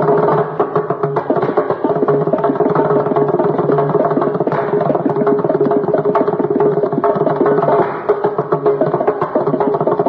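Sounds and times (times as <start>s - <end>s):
hand drum playing fast strokes: 0.0s - 10.0s.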